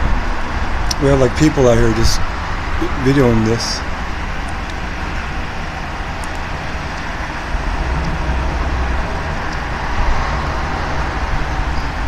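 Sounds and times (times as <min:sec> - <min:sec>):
emergency vehicles idling: 0:00.0 - 0:12.0
traffic and engines rumbling: 0:00.0 - 0:12.0
deep low rumble: 0:04.4 - 0:12.0.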